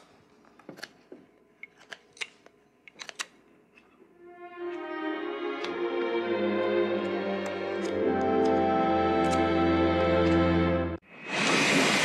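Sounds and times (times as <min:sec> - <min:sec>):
film score chord: 0:04.2 - 0:11.0.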